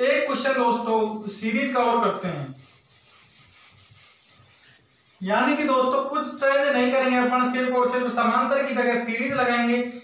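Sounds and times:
duster rubbing on whiteboard: 0:00.0 - 0:06.1.

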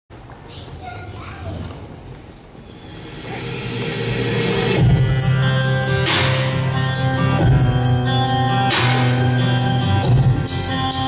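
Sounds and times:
chatter of voices in hall: 0:00.4 - 0:08.0.

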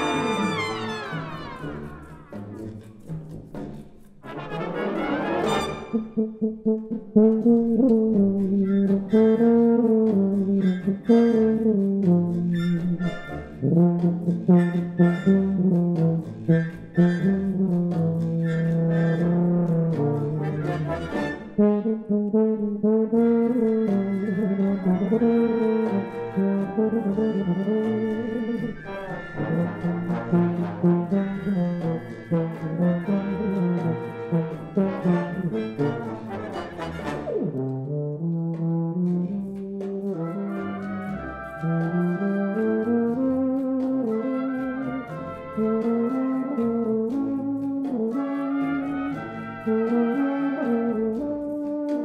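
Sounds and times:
brass band accompaniment: 0:00.0 - 0:52.0
solo tuba melody: 0:00.0 - 0:52.0.

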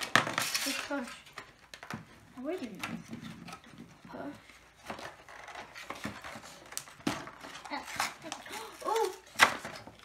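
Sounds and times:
cardboard box and foil crackling: 0:00.0 - 0:02.8, 0:04.1 - 0:10.0.

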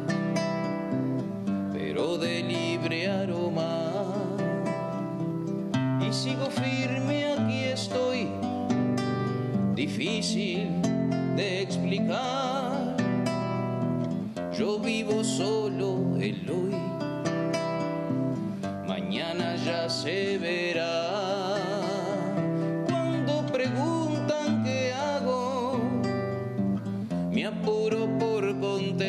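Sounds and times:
classical guitar chords: 0:00.0 - 0:29.0
man singing: 0:01.7 - 0:05.2, 0:06.0 - 0:08.7, 0:09.7 - 0:13.4, 0:14.4 - 0:17.6, 0:18.8 - 0:26.4, 0:27.3 - 0:29.0.

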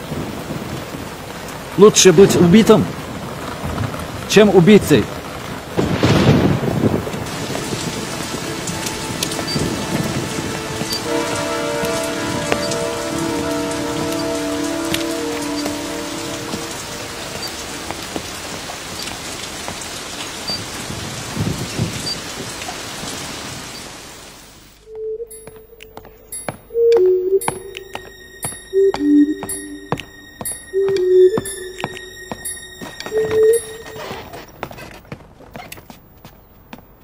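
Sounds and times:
heavy rain pouring: 0:00.0 - 0:24.8, 0:26.8 - 0:34.5
low thunder rumble: 0:05.6 - 0:14.0.

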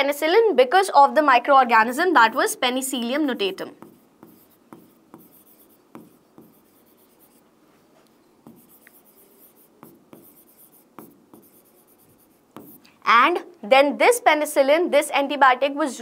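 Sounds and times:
marker pen writing on board: 0:02.2 - 0:07.4, 0:08.4 - 0:12.9.

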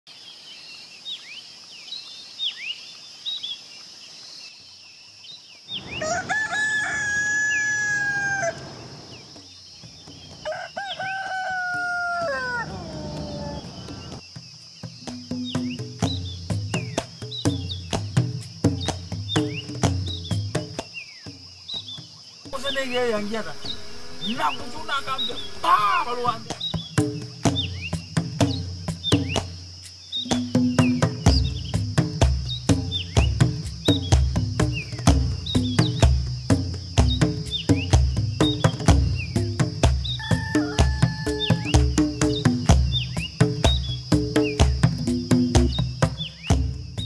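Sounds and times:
small birds chirping: 0:00.1 - 0:47.0
rooster crowing: 0:05.8 - 0:09.3, 0:10.4 - 0:14.2, 0:40.0 - 0:42.0.

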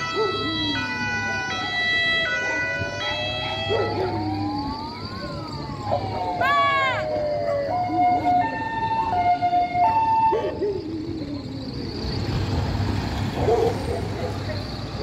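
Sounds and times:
two-tone siren: 0:00.0 - 0:12.3
wailing siren: 0:00.0 - 0:12.7.

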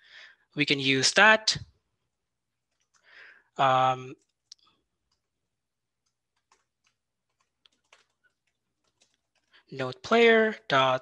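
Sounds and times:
faint keyboard typing: 0:02.5 - 0:03.2, 0:04.1 - 0:09.7.

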